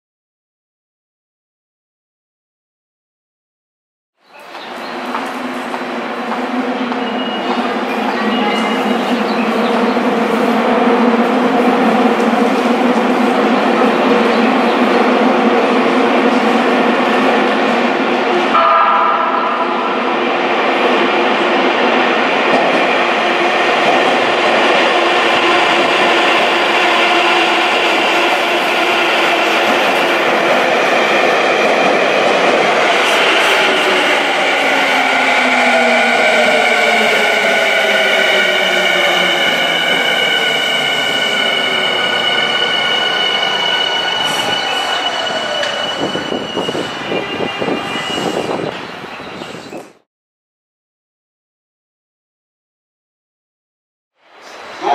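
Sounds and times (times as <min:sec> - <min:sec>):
falling whine of slowing train: 0:04.2 - 0:50.0
high brake squeal: 0:41.5 - 0:49.8.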